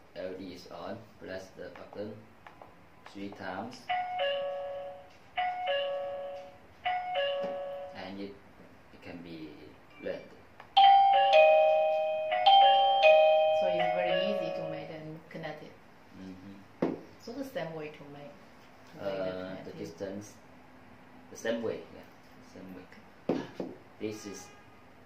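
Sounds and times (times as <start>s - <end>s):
doorbell chime ding-dong: 3.9s - 8.0s, 10.8s - 14.9s
doorbell chime tune: 3.9s - 8.0s, 10.8s - 14.9s.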